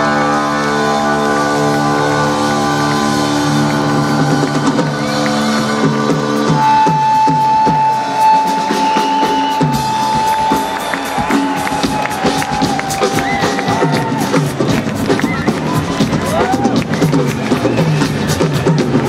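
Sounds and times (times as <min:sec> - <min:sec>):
crowd cheering: 0:00.0 - 0:19.0
live rock band: 0:00.0 - 0:19.0.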